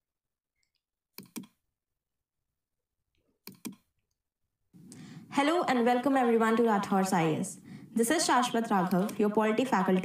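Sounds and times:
computer mouse clicking: 0:00.6 - 0:01.6, 0:03.4 - 0:03.9, 0:08.8 - 0:09.3.

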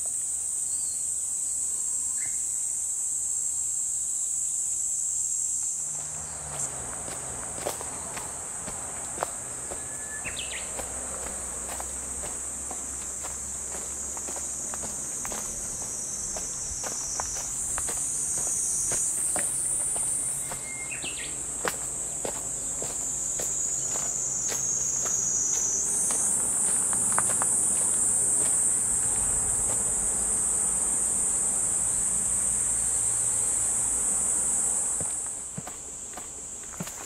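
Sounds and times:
high-pitched insect drone: 0:00.0 - 0:36.2
footsteps on leafy dirt trail: 0:05.6 - 0:30.2, 0:35.0 - 0:37.0.

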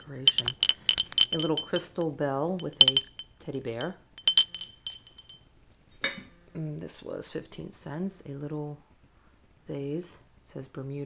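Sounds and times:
small crystal bell ringing: 0:00.0 - 0:02.0, 0:02.6 - 0:05.4.

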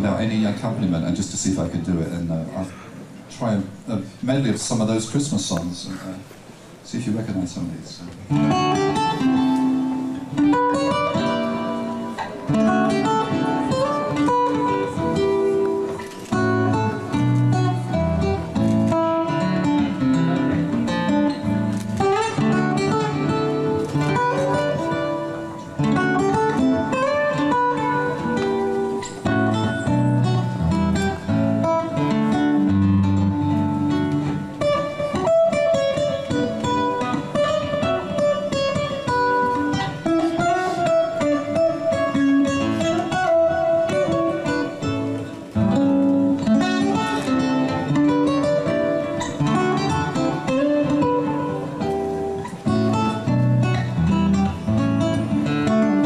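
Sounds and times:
solo acoustic guitar: 0:08.1 - 0:56.0.

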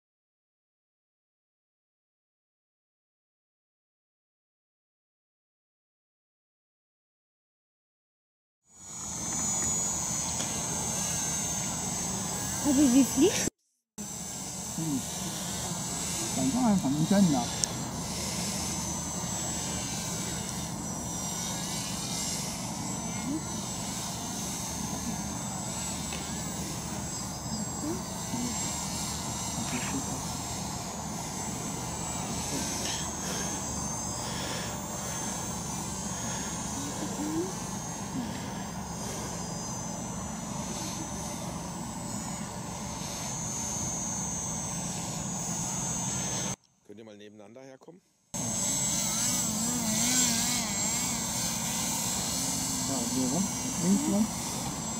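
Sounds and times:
model aircraft motors whining: 0:08.7 - 0:46.6, 0:48.4 - 0:54.9.

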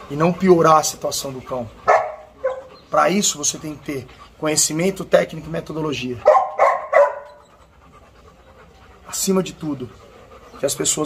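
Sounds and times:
dog barking high-pitched: 0:01.9 - 0:02.7, 0:06.2 - 0:07.4.

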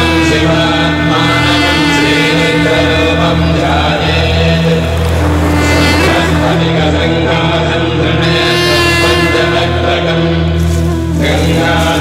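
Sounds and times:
chanting: 0:00.0 - 0:12.0
low drone: 0:00.0 - 0:12.0.

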